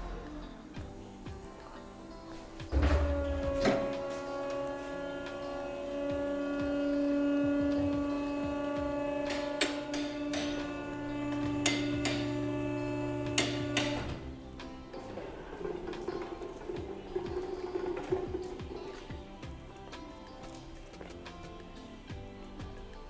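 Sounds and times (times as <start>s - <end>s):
car lift motor and pump hum: 2.7s - 14.4s.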